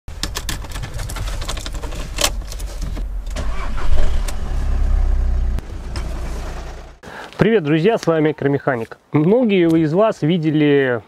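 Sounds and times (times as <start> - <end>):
car engine starting and running: 0.1 - 7.0.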